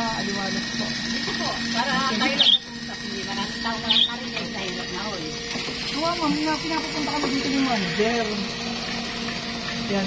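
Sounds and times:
electric motor hum: 0:00.0 - 0:10.0.

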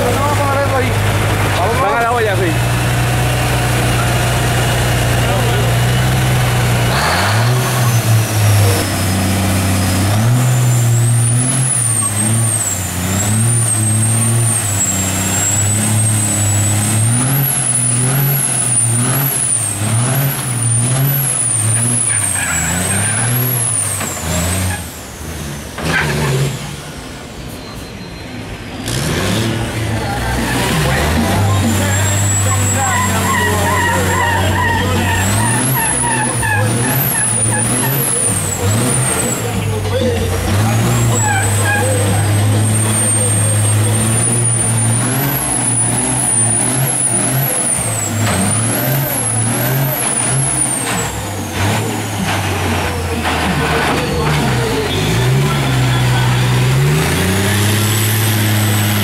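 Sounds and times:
diesel truck engine revving: 0:00.0 - 0:27.6, 0:28.4 - 0:59.0.

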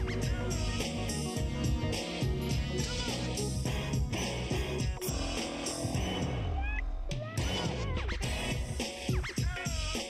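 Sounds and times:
record scratch sweeps: 0:00.0 - 0:10.0
theme song with steady beat: 0:00.0 - 0:10.0.

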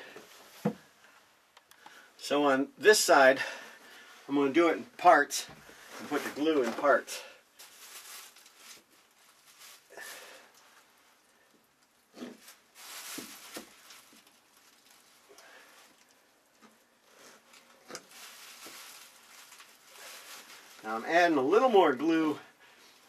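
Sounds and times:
rustling and scraping: 0:05.5 - 0:11.1, 0:12.1 - 0:21.9.

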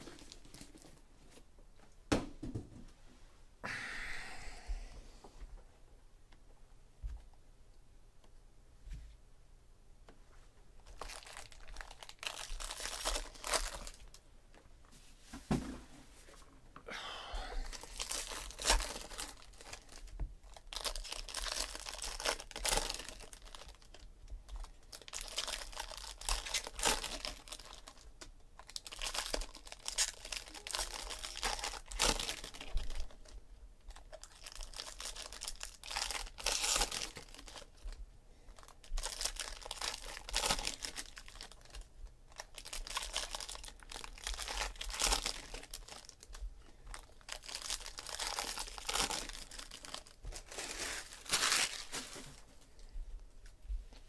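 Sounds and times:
card pack wrappers tearing: 0:10.9 - 0:14.0, 0:17.7 - 0:24.0, 0:24.6 - 0:28.0, 0:28.6 - 0:33.1, 0:34.2 - 0:37.7, 0:38.6 - 0:41.8, 0:42.4 - 0:46.4, 0:47.0 - 0:52.3.

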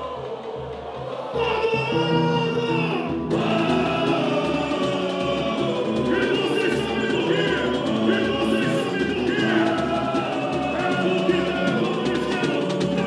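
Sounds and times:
crowd singing samba: 0:00.0 - 0:13.0
samba percussion beat: 0:03.2 - 0:13.0.

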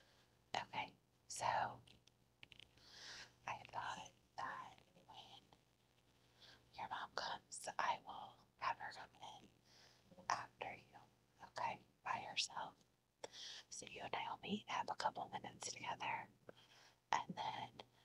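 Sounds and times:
woman whispering: 0:00.6 - 0:01.8, 0:03.4 - 0:05.5, 0:06.7 - 0:09.4, 0:10.2 - 0:16.3, 0:17.2 - 0:17.8.

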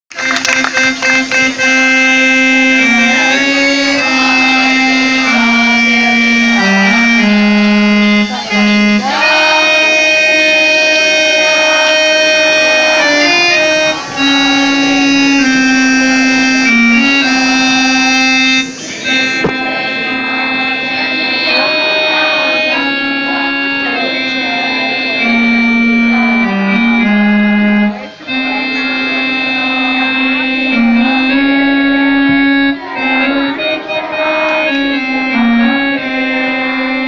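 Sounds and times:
electronic keyboard slow melody: 0:00.1 - 0:37.0.

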